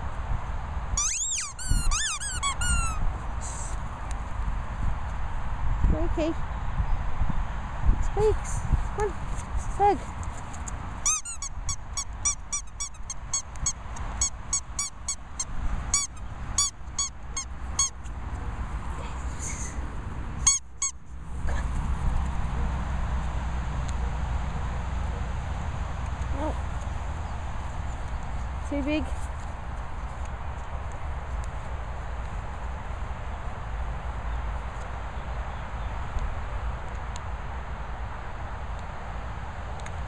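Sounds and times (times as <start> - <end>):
squeaky dog toy squeaking: 1.0 - 3.0, 11.0 - 18.0, 20.4 - 21.0.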